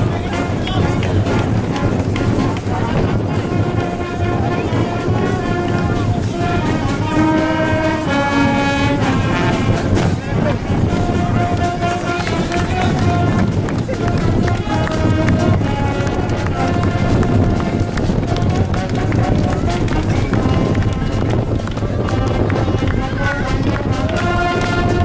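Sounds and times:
crowd talking: 0:00.0 - 0:25.0
wind band brass chords: 0:00.0 - 0:25.0.

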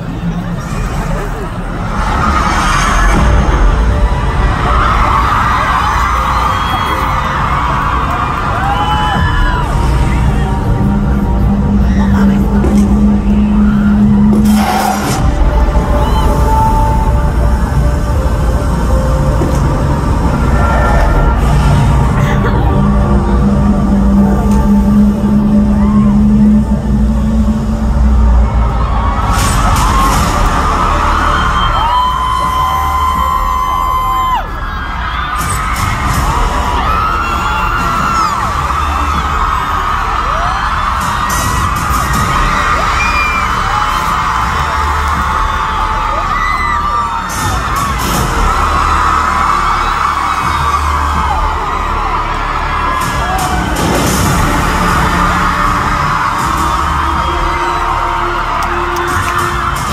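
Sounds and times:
crowd screaming and cheering: 0:00.0 - 0:59.9
loud concert music with heavy bass: 0:00.0 - 0:59.9.

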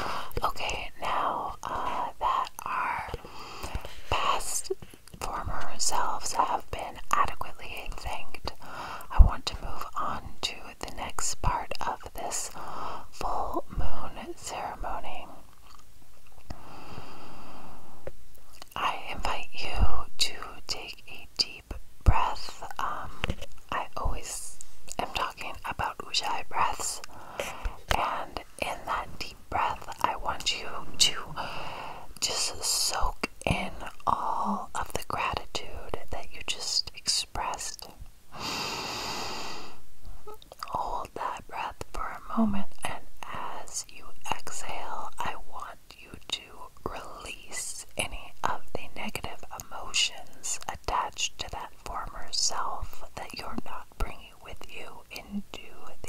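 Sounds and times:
person whispering: 0:00.0 - 0:15.8, 0:18.6 - 0:38.0, 0:40.2 - 0:56.0
long hiss: 0:38.3 - 0:39.8.

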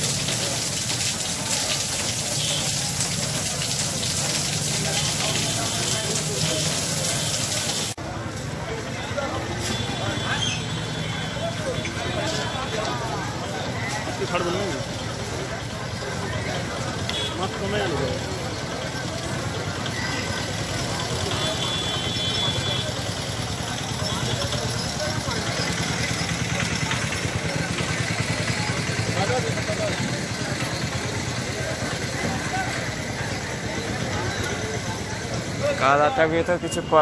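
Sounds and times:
people talking: 0:00.0 - 0:37.0
vehicle engine idling: 0:18.2 - 0:35.8.

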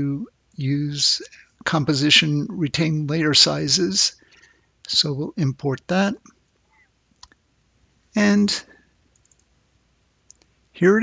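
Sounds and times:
computer mouse click: 0:09.1 - 0:09.5.

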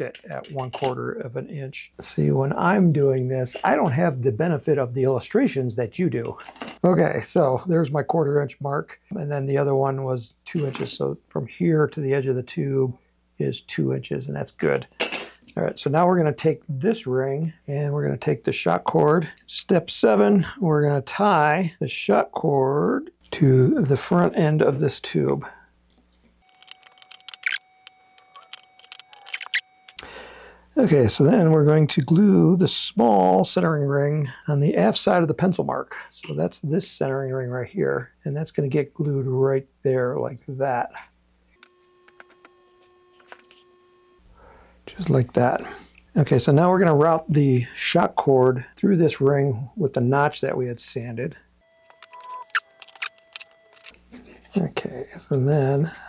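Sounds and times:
cord handling clicks and rustles: 0:26.5 - 0:30.0, 0:51.9 - 0:54.0.

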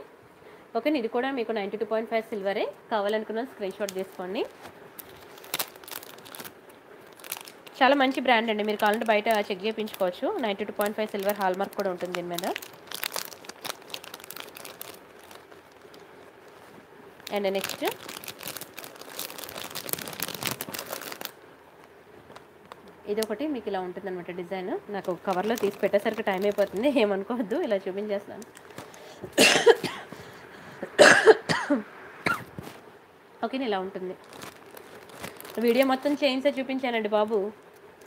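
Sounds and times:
plastic packets crinkling: 0:03.7 - 0:23.5, 0:24.8 - 0:29.3, 0:34.1 - 0:38.0
person coughing: 0:29.4 - 0:30.2, 0:30.8 - 0:32.5.

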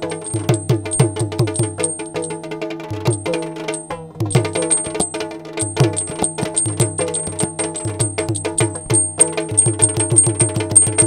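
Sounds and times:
drum beaten with sticks: 0:00.0 - 0:11.0
hand drum: 0:00.0 - 0:11.0.

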